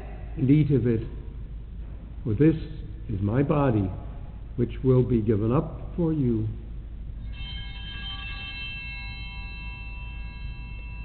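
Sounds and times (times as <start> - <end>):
low background hum: 0.0 - 11.0
altar bell ringing: 7.2 - 11.0.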